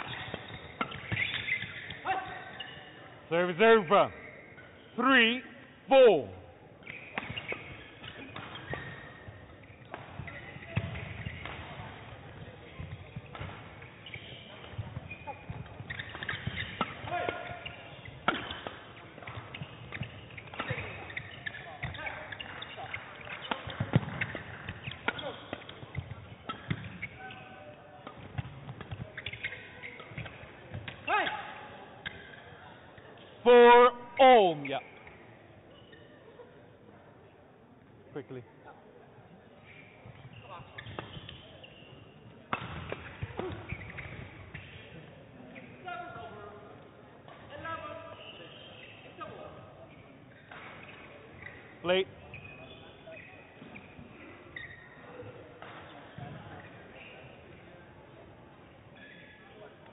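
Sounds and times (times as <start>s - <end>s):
footwork on court: 6.8s - 32.6s.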